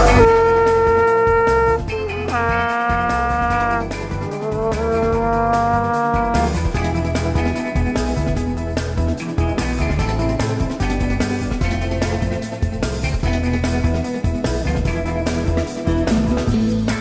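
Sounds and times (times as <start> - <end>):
vuvuzela blasts: 0.0 - 6.8
music with drum beat: 0.0 - 17.0.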